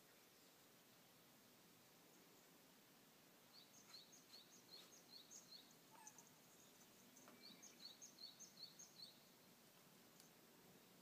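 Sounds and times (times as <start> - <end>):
small bird singing: 3.5 - 11.0.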